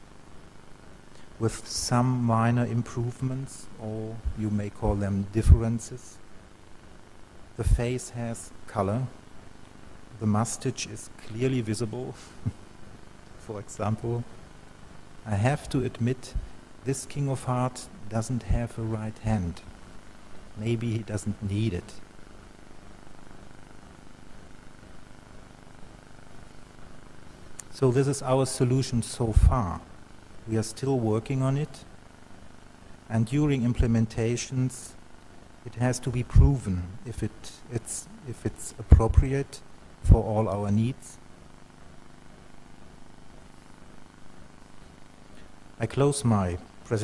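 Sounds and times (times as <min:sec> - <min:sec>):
faint hum: 0:00.0 - 0:47.0
steady low hiss: 0:00.0 - 0:47.0.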